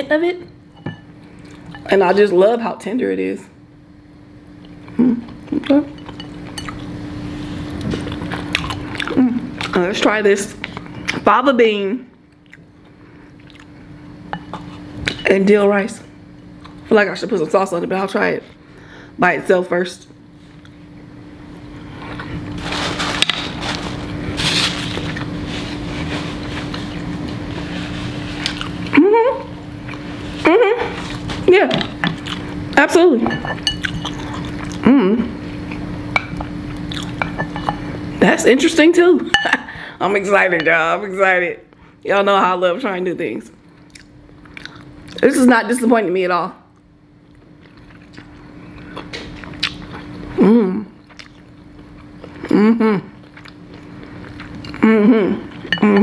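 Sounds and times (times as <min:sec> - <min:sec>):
faint steady hum: 0:00.0 - 0:56.0
chewing with wet mouth sounds: 0:12.3 - 0:13.7, 0:28.4 - 0:28.9, 0:31.9 - 0:32.6, 0:33.8 - 0:34.8, 0:36.7 - 0:37.7, 0:43.8 - 0:45.2, 0:47.2 - 0:50.2, 0:51.0 - 0:52.5, 0:53.2 - 0:54.8
person humming: 0:34.8 - 0:35.4, 0:50.4 - 0:50.9, 0:52.5 - 0:53.2, 0:54.7 - 0:56.0.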